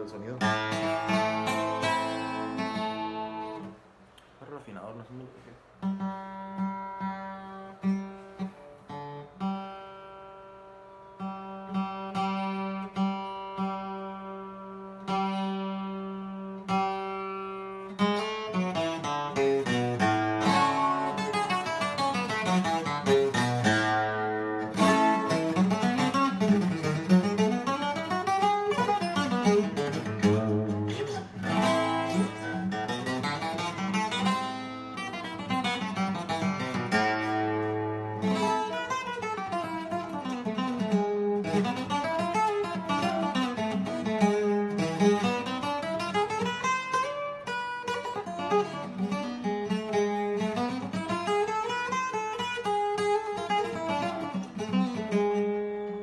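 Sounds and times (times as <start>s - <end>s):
twelve-string acoustic guitar: 0.0s - 4.2s, 5.6s - 56.0s.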